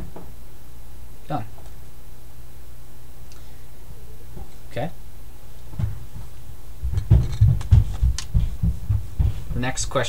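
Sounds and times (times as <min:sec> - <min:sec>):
dull low thumps: 0:05.7 - 0:09.8.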